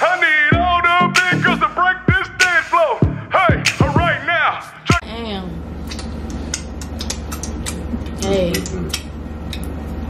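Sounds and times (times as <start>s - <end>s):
steady low hum: 0.5s - 10.0s.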